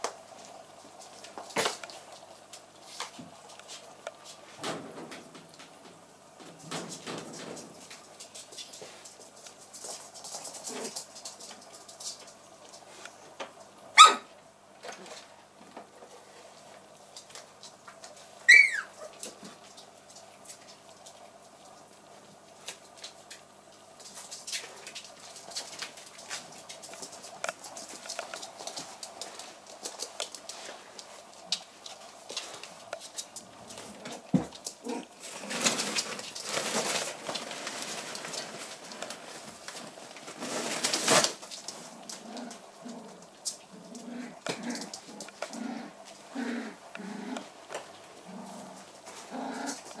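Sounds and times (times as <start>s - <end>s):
paws clicking on wooden floor: 0.0s - 13.7s, 14.8s - 50.0s
puppy yelp: 14.0s - 14.3s, 18.5s - 19.2s.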